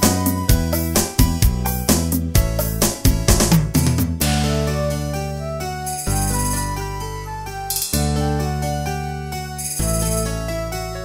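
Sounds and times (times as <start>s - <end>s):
instrumental backing track: 0.0s - 11.0s.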